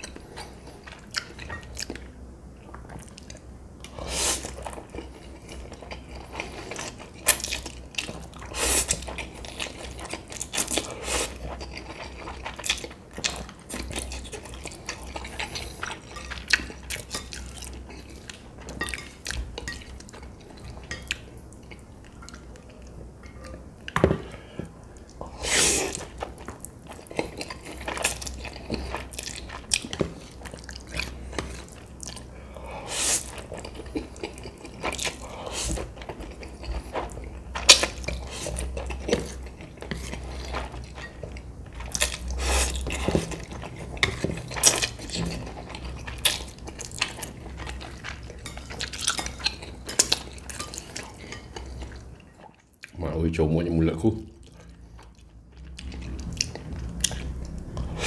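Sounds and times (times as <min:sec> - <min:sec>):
chewing: 0:00.0 - 0:53.0, 0:54.3 - 0:58.0.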